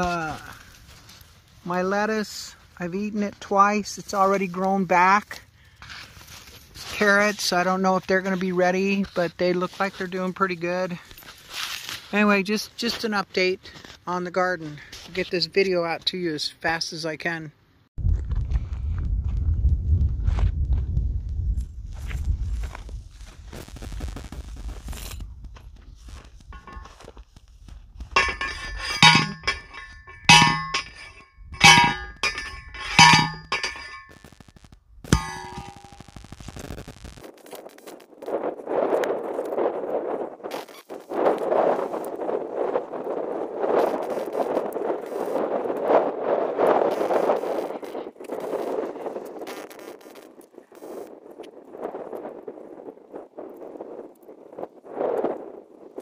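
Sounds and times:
post driver clanging on metal: 26.6s - 26.9s, 28.2s - 34.1s, 35.2s - 36.0s.

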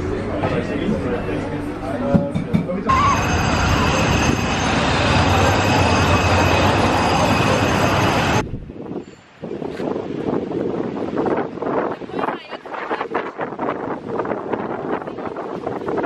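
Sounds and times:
loud road traffic: 2.9s - 10.3s.

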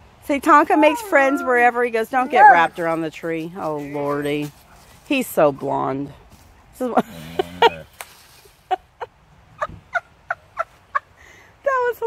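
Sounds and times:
dog howl-talking: 0.7s - 2.8s
dog yipping: 0.8s - 2.8s.

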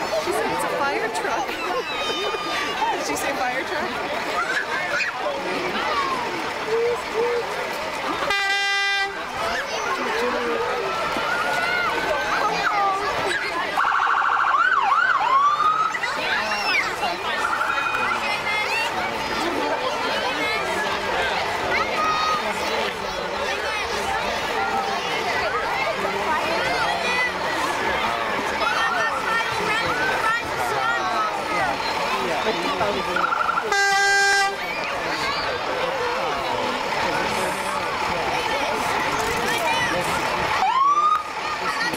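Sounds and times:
spectators chattering: 0.0s - 41.9s
vehicle horn blasts: 8.3s - 9.2s, 33.6s - 34.6s
siren wailing: 13.8s - 16.0s, 40.6s - 41.3s.

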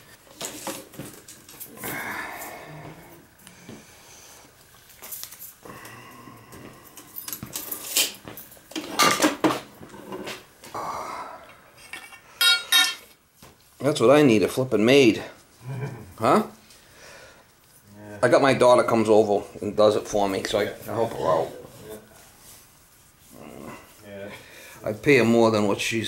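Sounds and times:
hand tools clinking in toolbox: 11.9s - 13.1s
ringing clink: 12.4s - 13.0s.

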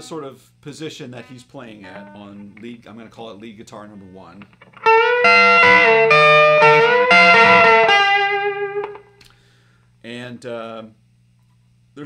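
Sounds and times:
faint amplifier hum: 0.0s - 12.0s
electric guitar notes ringing: 1.8s - 2.7s, 4.6s - 9.2s
guitar pick click: 4.4s - 9.4s.

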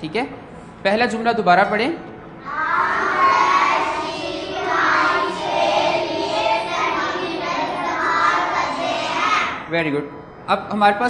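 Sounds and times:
children reading aloud in unison: 2.4s - 9.7s.

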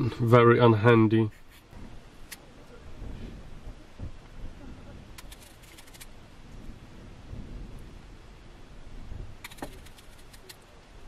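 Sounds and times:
low background rumble: 1.7s - 11.0s.

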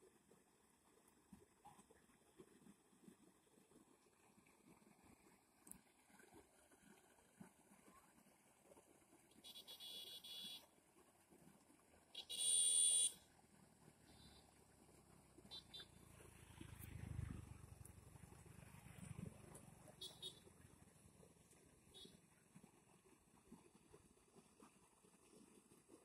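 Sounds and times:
faint outdoor background: 0.0s - 26.0s
vehicle horn blasts: 9.5s - 10.6s, 12.2s - 13.2s, 20.0s - 20.4s.

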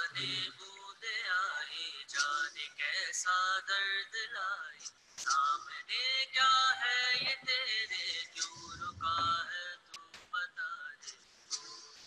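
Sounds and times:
man singing with music: 0.0s - 12.0s.

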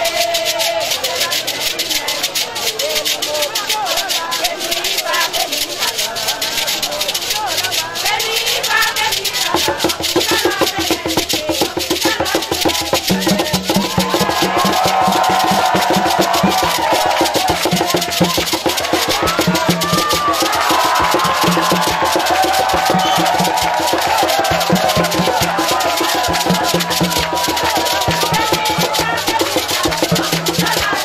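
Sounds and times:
shaken rattles: 0.0s - 31.0s
women's chorus singing: 0.0s - 31.0s
hand drumming: 7.4s - 31.0s.

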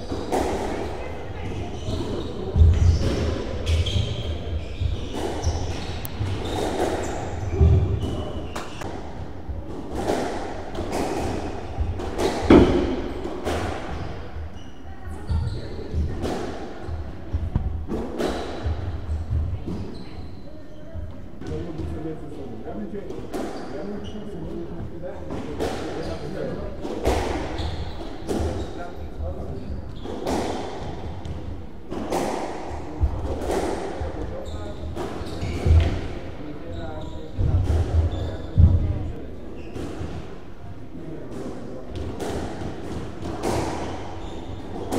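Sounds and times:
squash ball hits echoing: 0.0s - 14.2s, 41.3s - 44.9s
squash ball struck by rackets: 9.9s - 14.0s.

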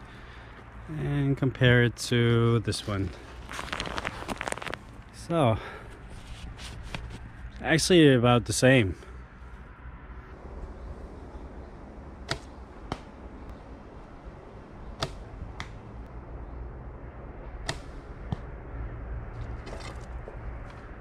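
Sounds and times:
arrow knock: 12.3s - 13.1s, 15.0s - 15.8s, 17.6s - 18.5s
bow string snapping: 15.0s - 15.8s.

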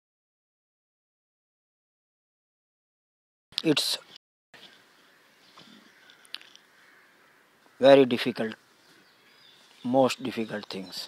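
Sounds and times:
faint outdoor hiss: 3.6s - 11.0s.

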